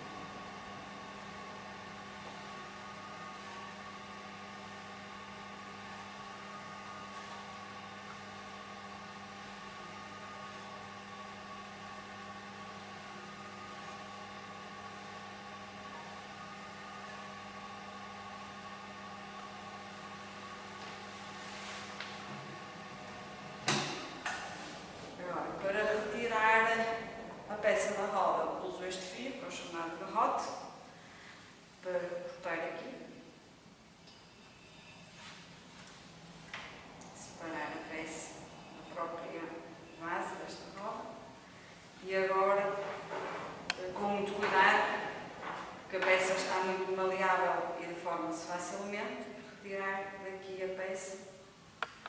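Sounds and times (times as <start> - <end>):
machine hum with whine: 0.0 - 52.0.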